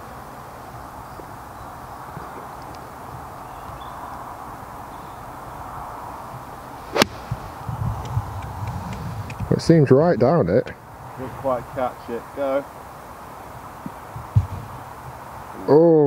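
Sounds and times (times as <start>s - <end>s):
golf club striking ball: 6.9s - 9.4s.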